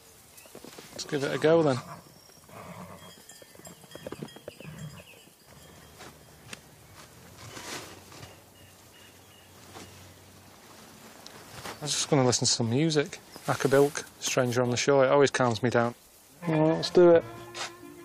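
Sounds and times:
soft rustles: 0:00.2 - 0:01.5, 0:03.3 - 0:14.9
footsteps: 0:05.8 - 0:08.4, 0:09.6 - 0:12.2, 0:17.4 - 0:17.8.

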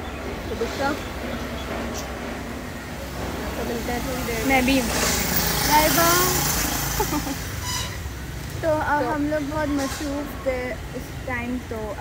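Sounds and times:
outdoor background noise: 0:00.0 - 0:12.0
women's voices: 0:03.5 - 0:07.4, 0:08.6 - 0:12.0
women laughing: 0:06.7 - 0:07.6.

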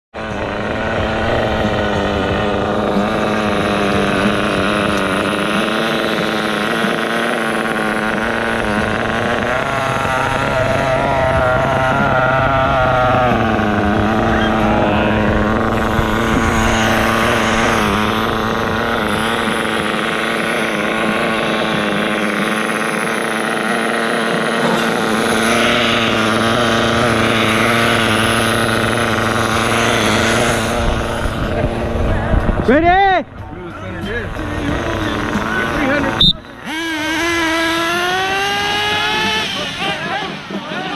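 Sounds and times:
rc car engine idling: 0:00.2 - 0:40.9.

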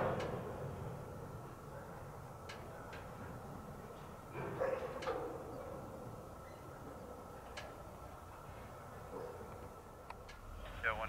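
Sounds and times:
freight train rumbling: 0:00.0 - 0:04.7
train clanks: 0:00.0 - 0:10.8.

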